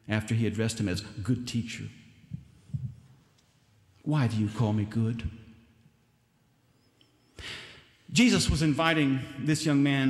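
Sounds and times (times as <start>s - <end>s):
soft low thumps: 2.3s - 3.1s.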